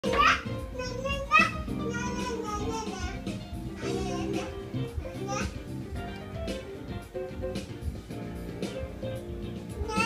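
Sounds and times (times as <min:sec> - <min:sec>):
small child's voice: 0:00.0 - 0:05.7, 0:09.8 - 0:10.0
music playing: 0:00.0 - 0:10.0.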